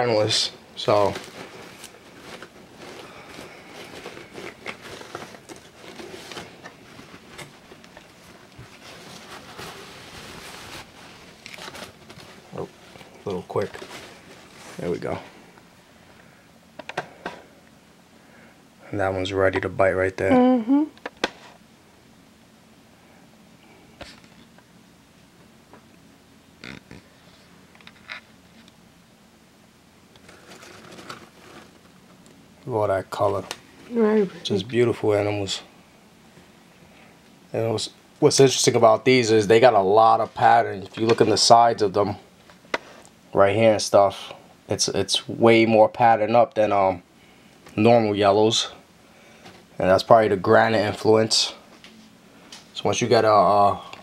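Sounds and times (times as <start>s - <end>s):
soft handling noises: 0.1s - 17.5s
packing material rustling: 0.2s - 15.2s, 30.2s - 32.0s
plastic bag crinkling: 0.3s - 15.0s
newspaper rustling: 0.8s - 15.2s, 30.2s - 31.9s.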